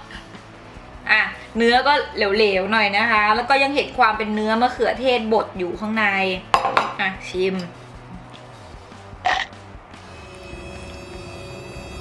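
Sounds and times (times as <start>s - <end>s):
woman speaking: 1.1s - 7.8s.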